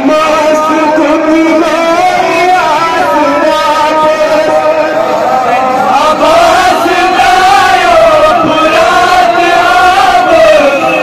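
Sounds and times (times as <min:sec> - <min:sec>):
man chanting a lament: 0:00.0 - 0:11.0.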